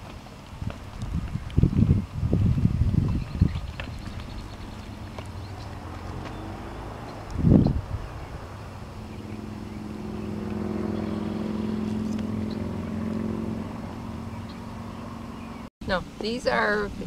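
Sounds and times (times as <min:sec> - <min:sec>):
engine humming: 0:00.0 - 0:17.0
loud low rumble: 0:01.0 - 0:15.7.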